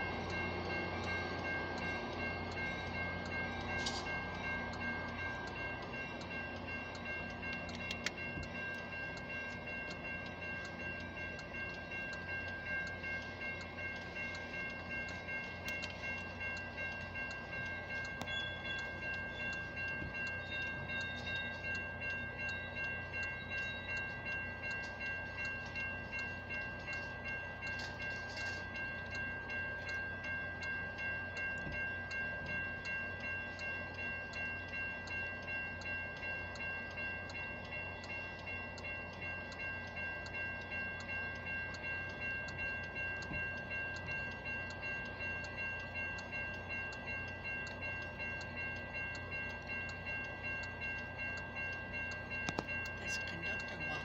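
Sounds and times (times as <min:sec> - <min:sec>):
crossing bell ringing: 0:00.0 - 0:54.0
train rumbling past: 0:00.0 - 0:54.0.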